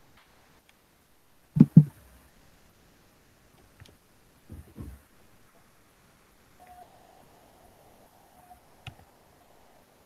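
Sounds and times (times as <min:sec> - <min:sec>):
faint background hiss: 0:00.0 - 0:10.0
faint steady beep-like tone: 0:06.6 - 0:08.8.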